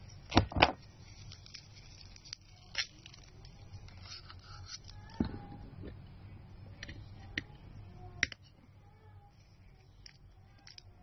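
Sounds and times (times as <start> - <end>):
faint scraping and rustling: 0.0 - 11.0.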